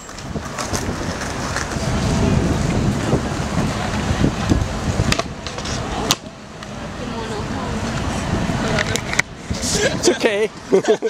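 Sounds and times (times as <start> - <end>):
skateboard wheels rolling on stone: 0.0 - 10.7
sharp skateboard clack: 4.4 - 6.7.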